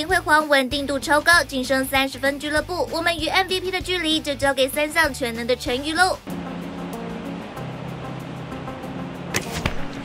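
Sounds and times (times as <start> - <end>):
background music with low tones: 0.0 - 10.0
arrow striking target: 9.3 - 10.0
bow string snapping: 9.3 - 10.0.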